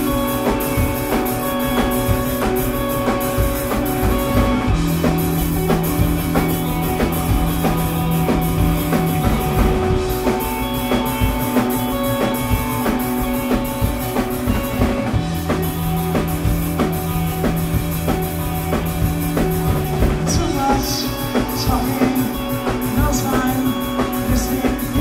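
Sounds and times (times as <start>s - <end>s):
drum kit beat: 0.0s - 25.0s
guitar and bass long notes: 0.0s - 25.0s.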